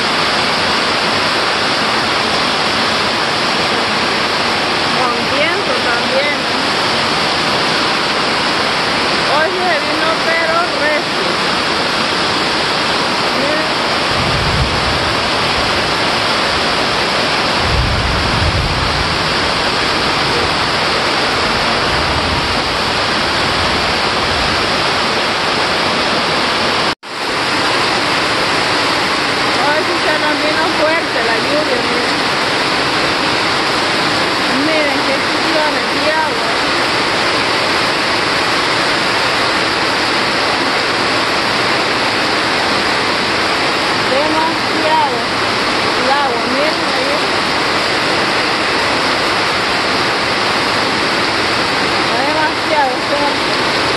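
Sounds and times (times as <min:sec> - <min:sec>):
heavy rain roaring: 0:00.0 - 0:53.9
low rumble: 0:13.8 - 0:24.8.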